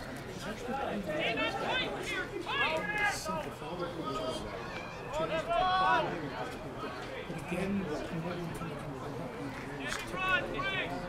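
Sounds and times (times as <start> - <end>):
faint voices of spectators: 0.0 - 11.0.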